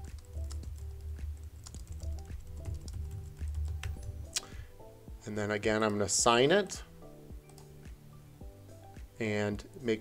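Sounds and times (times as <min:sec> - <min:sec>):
computer keyboard typing: 0:00.0 - 0:04.2, 0:07.4 - 0:07.7
background music: 0:00.0 - 0:10.0.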